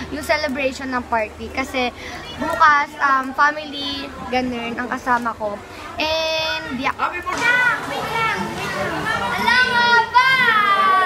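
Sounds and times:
young people shouting: 0:06.7 - 0:11.0.

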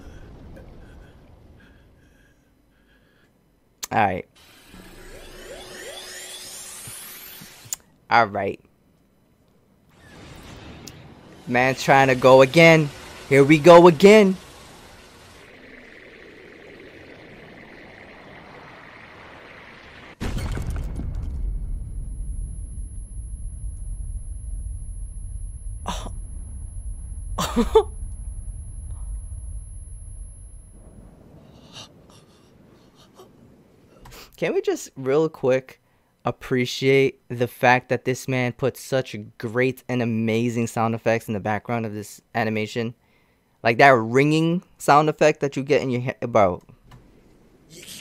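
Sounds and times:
low rumble: 0:00.0 - 0:02.7, 0:10.0 - 0:34.0
steady tone: 0:04.4 - 0:07.8, 0:09.2 - 0:32.7
rising whistling sweeps: 0:04.6 - 0:07.7, 0:15.4 - 0:20.2
high-pitched ear-ringing tone: 0:04.7 - 0:07.7, 0:21.9 - 0:31.0
sustained whoosh: 0:13.2 - 0:33.9.

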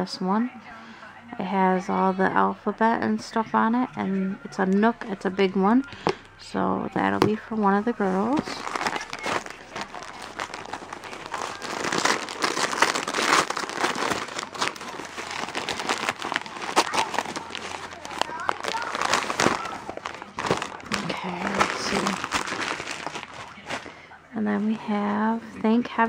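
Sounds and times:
wrapping paper tearing and crinkling: 0:08.0 - 0:24.0.

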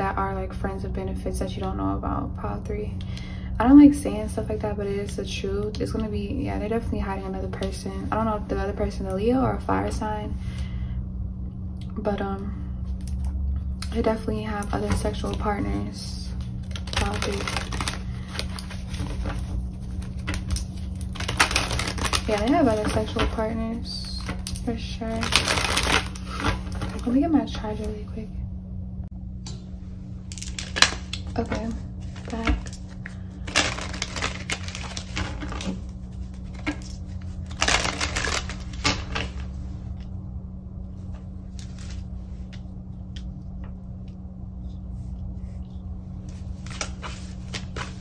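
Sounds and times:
steady low hum: 0:00.0 - 0:48.0
rustling: 0:30.4 - 0:40.0.

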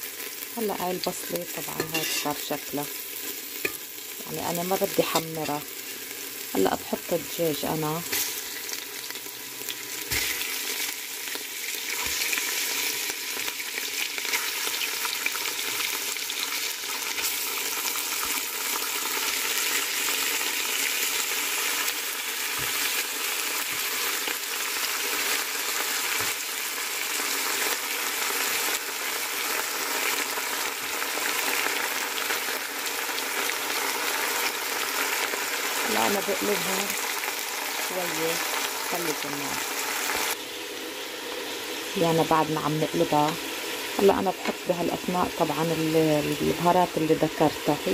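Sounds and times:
chicken sizzling in hot oil: 0:00.0 - 0:47.9
metal spoon stirring: 0:01.7 - 0:02.4.

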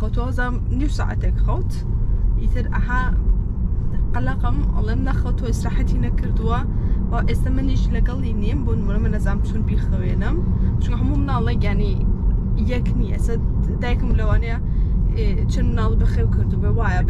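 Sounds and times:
woman talking: 0:00.0 - 0:01.8, 0:02.4 - 0:03.2, 0:03.9 - 0:17.0
car road noise rumble: 0:00.0 - 0:17.0.

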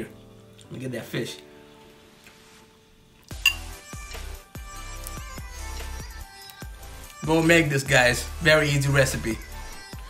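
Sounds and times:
background music with steady beat: 0:00.0 - 0:10.0
spoon clinking ceramic bowl: 0:03.4 - 0:03.7.

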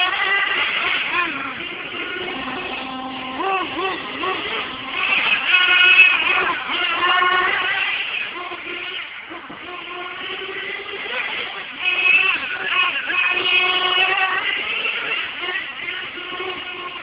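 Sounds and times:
small engines whining: 0:00.0 - 0:17.0.

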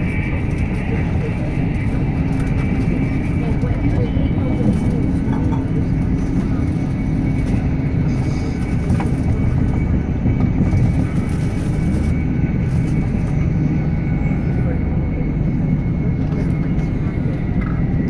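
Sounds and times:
train wheels rumbling on rail: 0:00.0 - 0:18.0.

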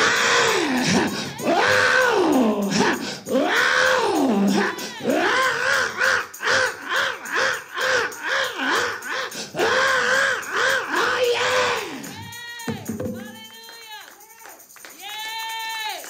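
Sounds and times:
man chanting into a microphone: 0:00.0 - 0:05.4.

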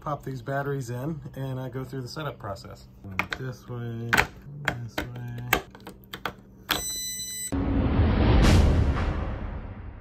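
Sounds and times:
electronic lock beep: 0:06.7 - 0:07.6
loud rushing noise: 0:07.6 - 0:10.0.

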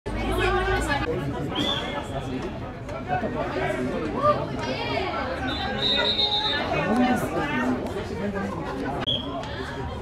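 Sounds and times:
voices talking and calling out: 0:00.1 - 0:10.0.

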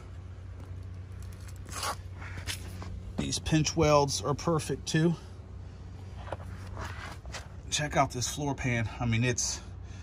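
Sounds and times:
low steady hum: 0:00.0 - 0:10.0
short rustling scrape: 0:06.2 - 0:07.6.

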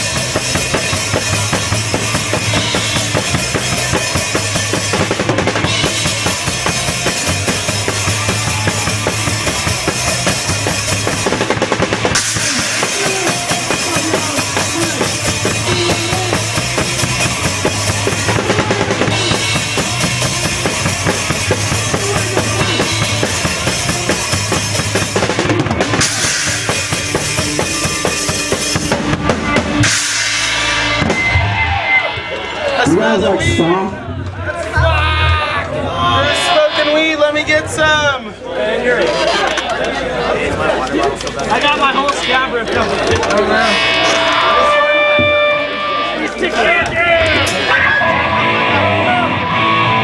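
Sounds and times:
electric guitar: 0:00.0 - 0:32.8, 0:42.8 - 0:50.0
drum kit pounding: 0:00.0 - 0:33.6, 0:43.0 - 0:50.0
punk band playing live: 0:00.0 - 0:38.4, 0:39.1 - 0:50.0.

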